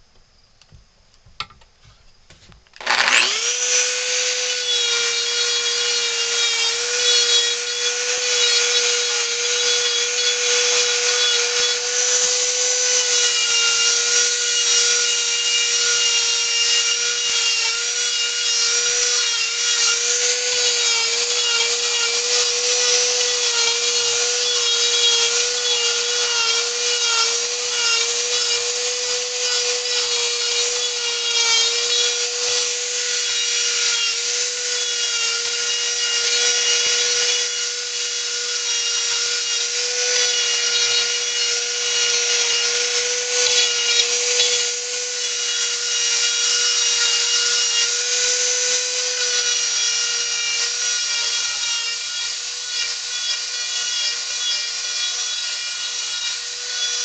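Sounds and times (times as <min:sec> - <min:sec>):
rotary tool grinding into wood: 0:02.7 - 0:57.0.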